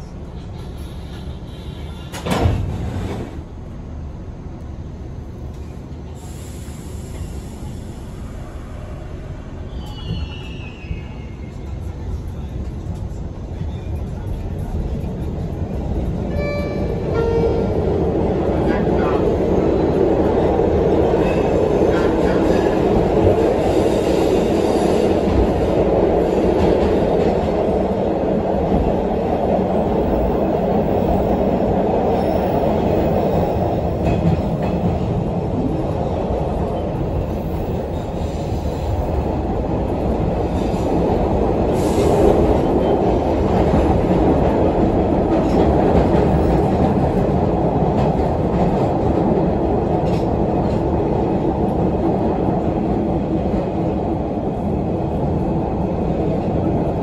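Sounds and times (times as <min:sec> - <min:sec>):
subway wheels rumbling: 0:00.0 - 0:57.0.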